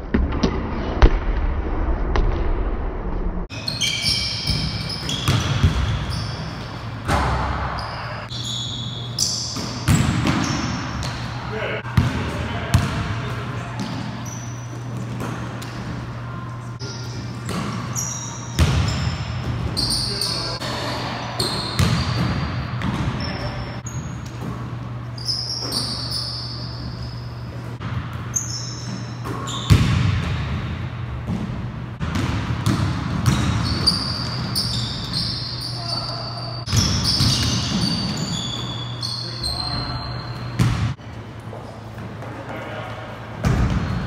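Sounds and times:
sneakers squeaking: 3.5s - 44.0s
steady low hum: 5.5s - 33.2s
players' voices: 11.0s - 18.5s.

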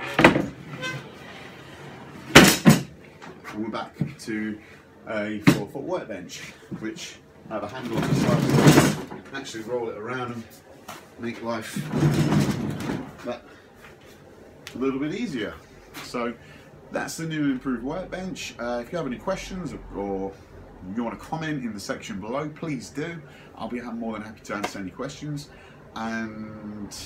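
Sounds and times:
workbench rattle: 0.0s - 1.1s, 2.2s - 3.3s, 7.8s - 9.2s, 11.7s - 13.2s
loud wooden knock: 2.3s - 2.9s.

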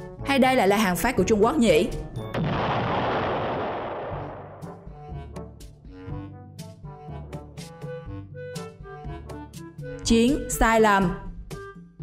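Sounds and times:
sharp weapon blast: 2.3s - 4.9s.

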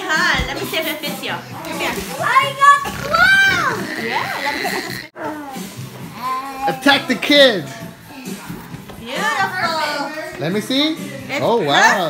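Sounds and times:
children and adults talking: 0.0s - 12.0s
child squealing: 2.2s - 5.1s.

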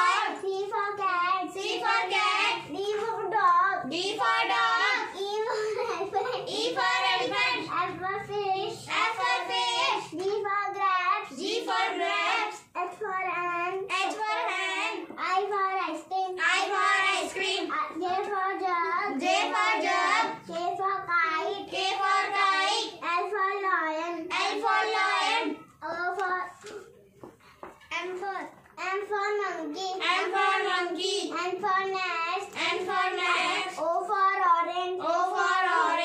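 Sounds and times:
girl chanting sing-song: 0.0s - 5.3s, 6.4s - 26.6s, 29.8s - 36.0s.

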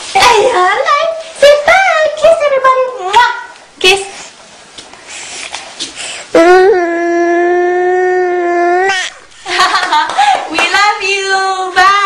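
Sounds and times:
child babbling: 6.4s - 9.2s.

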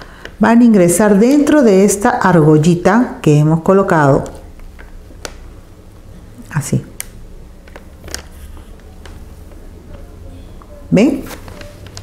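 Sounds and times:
steady low hum: 1.6s - 11.0s
cord rustling: 7.0s - 10.2s.

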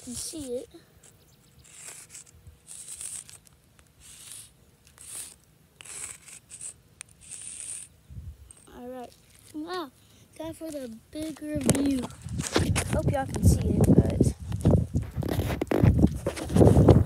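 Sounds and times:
chalk scraping on concrete: 1.6s - 7.9s.

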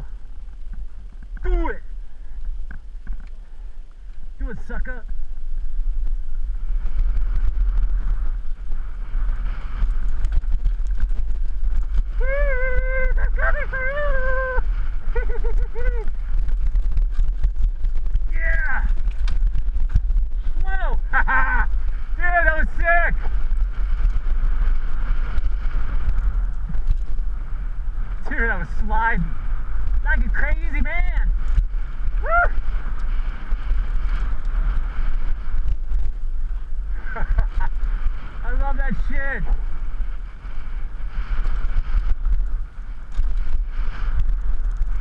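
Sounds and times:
bike rattling on dirt trail: 0.0s - 45.0s
wind buffeting microphone: 0.0s - 45.0s.

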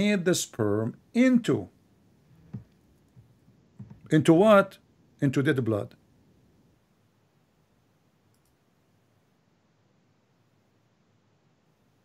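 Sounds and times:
faint high clicks: 8.3s - 8.6s.

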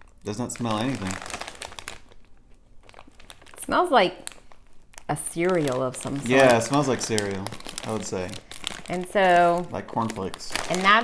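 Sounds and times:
plastic snack bag crinkling: 0.0s - 11.0s.

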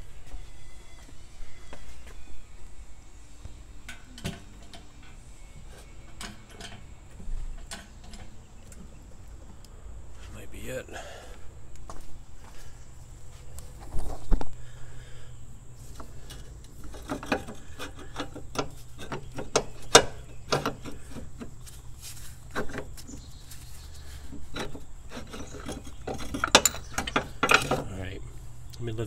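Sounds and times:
metal clunks and scraping: 3.8s - 9.0s, 15.8s - 28.1s.

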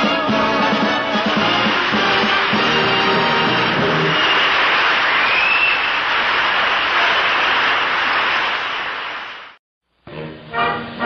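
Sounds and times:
audience applause: 0.1s - 9.6s.

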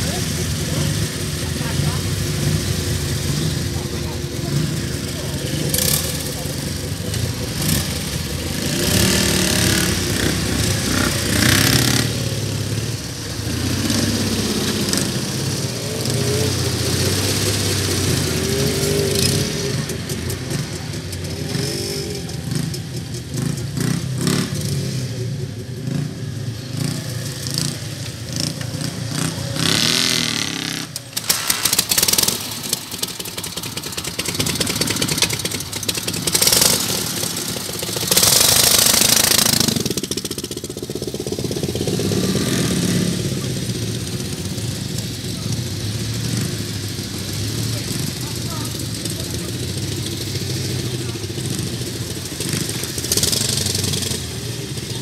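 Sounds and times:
motorcycle engine idling: 0.0s - 15.6s, 25.0s - 55.0s.

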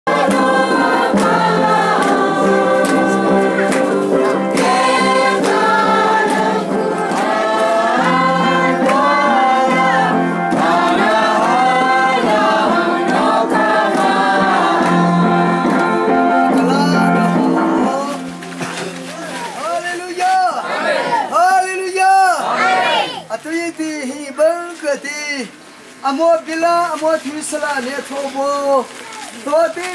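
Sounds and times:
group singing a hymn: 0.1s - 19.0s, 20.6s - 21.4s, 22.4s - 23.2s.

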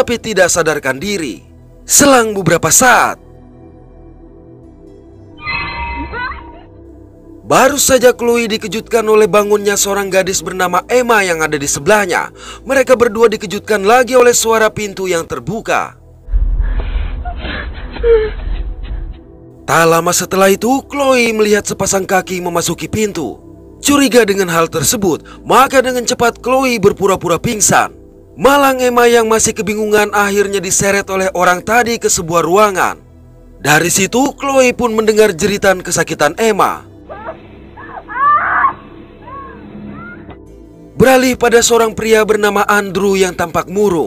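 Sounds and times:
woman screaming in pain: 5.9s - 6.7s, 37.1s - 40.4s
muffled cry: 37.1s - 40.4s.

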